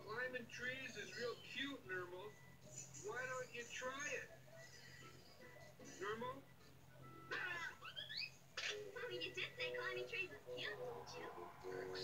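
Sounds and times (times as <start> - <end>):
cartoon soundtrack from television: 0.0 - 12.0.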